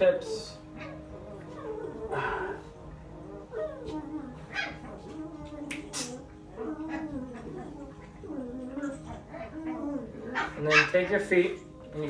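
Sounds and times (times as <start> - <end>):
dog whining: 0.6 - 11.0.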